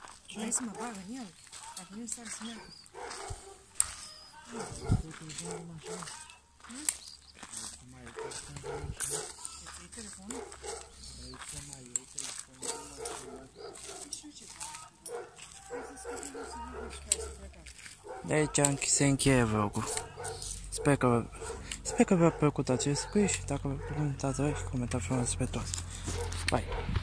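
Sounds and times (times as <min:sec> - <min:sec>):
indistinct voices: 0:00.0 - 0:26.8
footsteps on gravel: 0:00.0 - 0:27.0
dog barking: 0:00.4 - 0:01.2, 0:02.3 - 0:06.3, 0:08.0 - 0:11.5, 0:12.6 - 0:25.4, 0:26.1 - 0:27.0.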